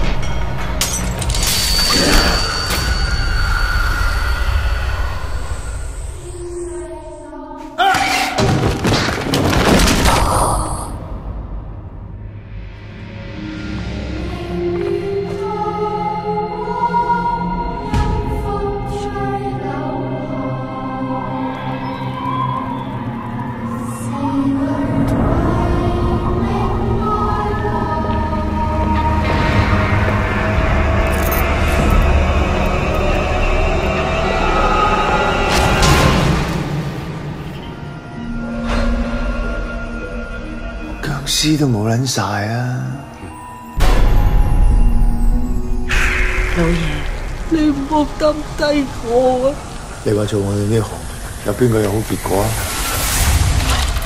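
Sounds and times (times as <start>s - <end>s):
deep rumbling drone: 20.7s - 41.6s, 43.8s - 54.0s.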